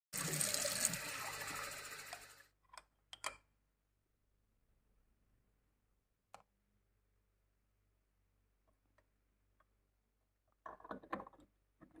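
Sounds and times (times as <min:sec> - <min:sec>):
tap water running into sink: 0:00.2 - 0:02.4.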